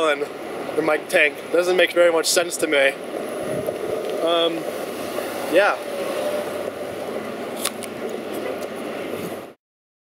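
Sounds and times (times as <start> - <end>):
distant traffic: 0.0 - 9.6.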